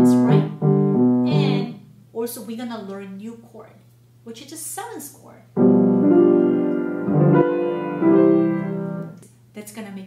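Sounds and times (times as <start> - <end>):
grand piano chords: 0.0 - 1.8, 5.5 - 9.2.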